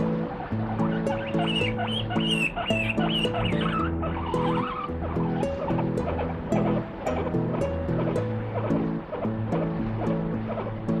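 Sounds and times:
guinea pig squealing: 0.0 - 10.2
background music: 0.0 - 11.0.

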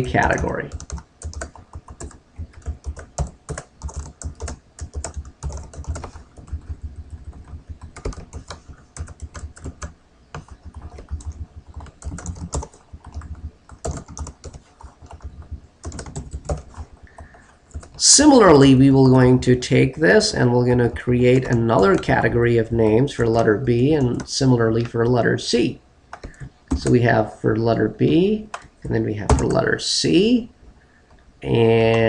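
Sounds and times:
computer keyboard typing: 0.0 - 18.0, 20.8 - 22.3, 26.1 - 27.0.

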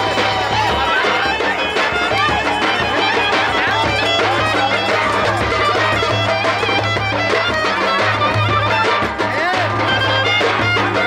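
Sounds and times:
small hand drum: 0.0 - 11.0.

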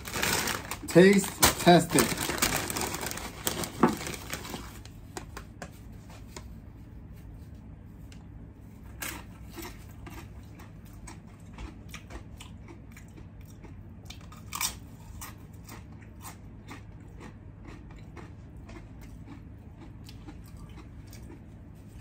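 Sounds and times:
person chewing crunchy chip: 0.0 - 4.8, 8.9 - 22.0.

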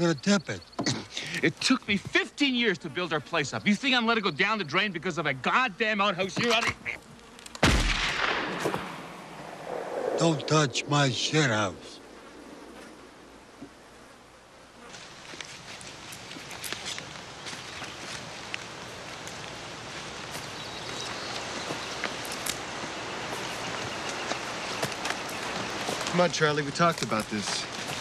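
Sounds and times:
rustling in dry leaves: 14.9 - 28.0.

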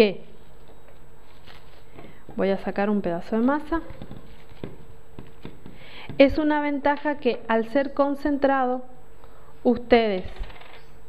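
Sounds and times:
plastic wrap rustling: 0.5 - 2.0, 3.8 - 4.9.

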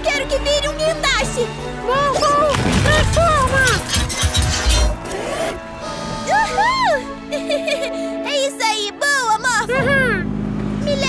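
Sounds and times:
cartoon background music: 0.0 - 10.3
clattering metallic effects: 2.5 - 5.3.

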